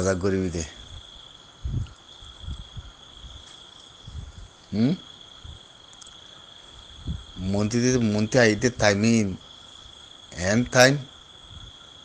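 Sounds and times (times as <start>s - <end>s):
man speaking: 0.0s - 0.8s, 4.7s - 5.1s, 7.4s - 9.4s, 10.4s - 11.1s
insect trilling: 0.0s - 12.0s.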